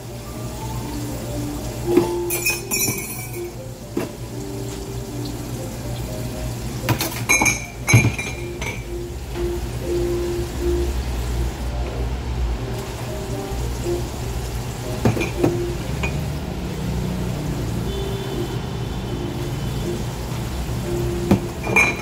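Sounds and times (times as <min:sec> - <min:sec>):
soft background music: 0:00.0 - 0:22.0
crockery clinking: 0:02.0 - 0:03.6, 0:07.0 - 0:08.9, 0:21.6 - 0:22.0
sink faucet water splashing: 0:12.6 - 0:22.0.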